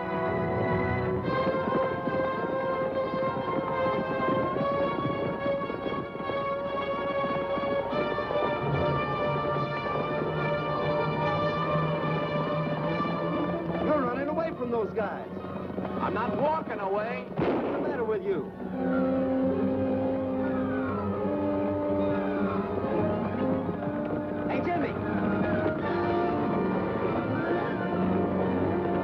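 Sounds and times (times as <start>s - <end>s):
orchestral chase music: 0.0s - 29.0s
sharp cracks: 15.6s - 18.6s.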